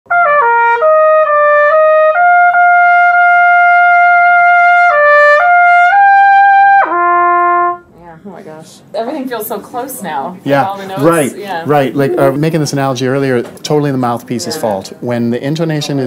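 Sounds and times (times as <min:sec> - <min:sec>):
solo trumpet: 0:00.1 - 0:07.9.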